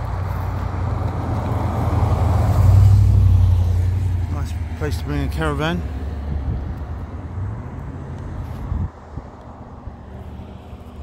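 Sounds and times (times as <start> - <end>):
vehicle engine and tyre rumble: 0.0 - 11.0.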